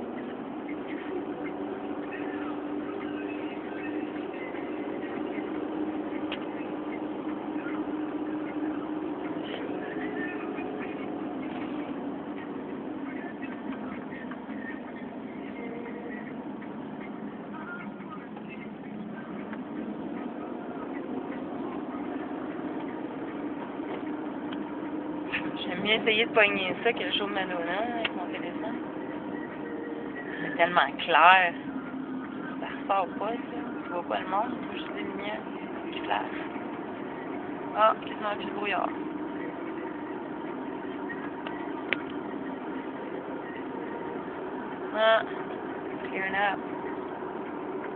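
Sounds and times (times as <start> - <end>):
car interior road drone: 0.0 - 47.9.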